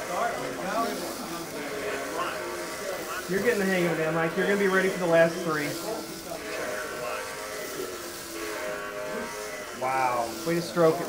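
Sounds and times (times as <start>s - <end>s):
slot car motors whining: 0.0s - 8.5s.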